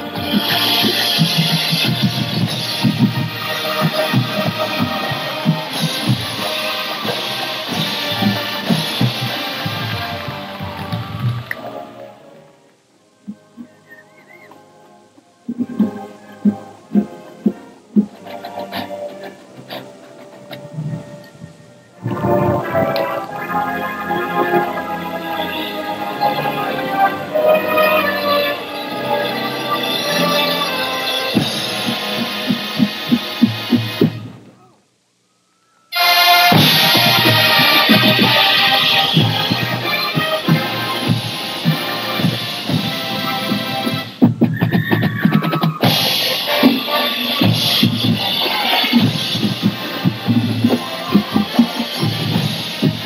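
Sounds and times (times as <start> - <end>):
marching band brass chords: 0.0 - 12.4, 15.5 - 34.5, 35.9 - 44.5, 45.4 - 53.0
held instrument notes: 0.0 - 34.7, 35.9 - 44.2.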